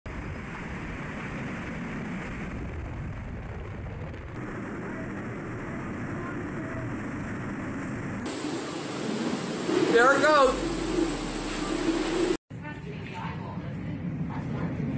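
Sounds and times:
hurricane wind: 0:00.1 - 0:12.4
driving rain: 0:04.0 - 0:12.4.

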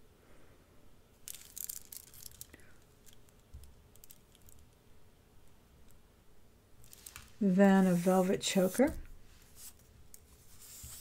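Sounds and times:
glass beads clicking: 0:01.3 - 0:04.7.

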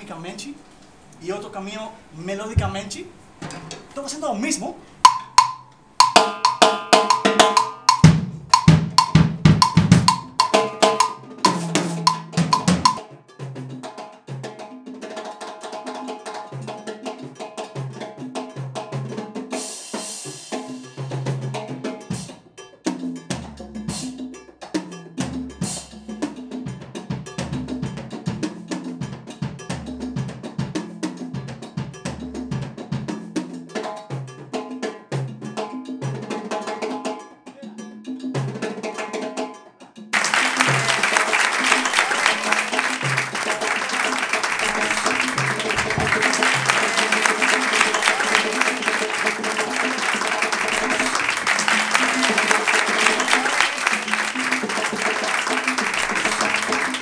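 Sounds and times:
cowbell played with sticks: 0:05.0 - 0:14.3, 0:15.0 - 0:57.0.

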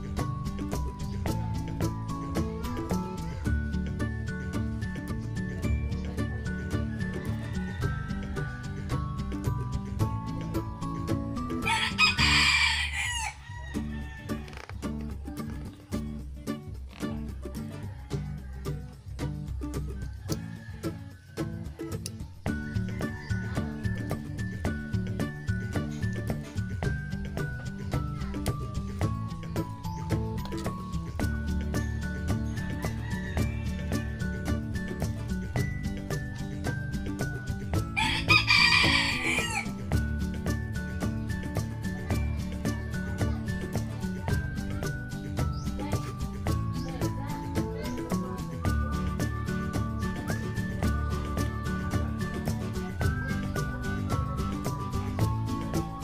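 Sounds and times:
music with plucked notes: 0:00.0 - 0:56.0
rooster crowing: 0:11.6 - 0:14.6, 0:17.6 - 0:19.0, 0:20.0 - 0:21.7, 0:32.7 - 0:34.2, 0:38.0 - 0:39.8.

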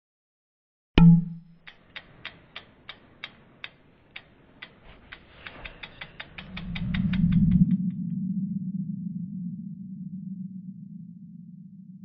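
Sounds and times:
sharp ticks: 0:01.0 - 0:08.0
low rising swell: 0:05.4 - 0:12.0.

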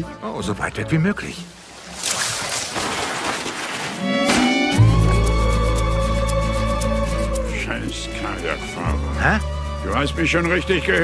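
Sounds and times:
leaves and branches rustling: 0:01.5 - 0:04.7.

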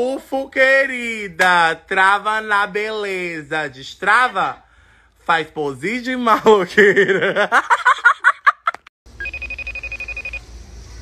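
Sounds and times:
phone ringtone: 0:09.2 - 0:10.4.

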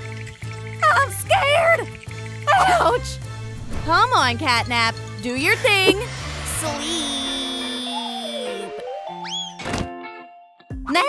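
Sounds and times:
background music: 0:00.0 - 0:11.0
short whooshing hit: 0:03.4 - 0:04.1.

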